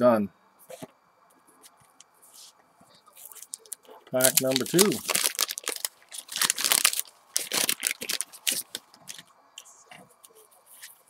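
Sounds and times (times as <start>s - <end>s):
cards being handled: 3.2s - 9.2s
wrapper tearing and crinkling: 3.3s - 9.2s.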